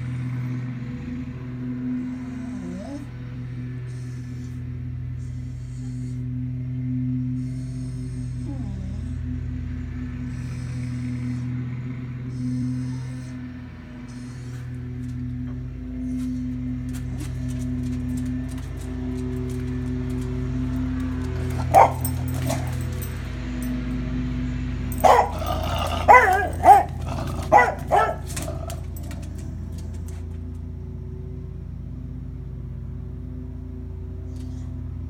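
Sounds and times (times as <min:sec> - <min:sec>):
steady low drone: 0:00.0 - 0:35.0
dog barking and baying: 0:20.5 - 0:23.3, 0:24.9 - 0:30.3.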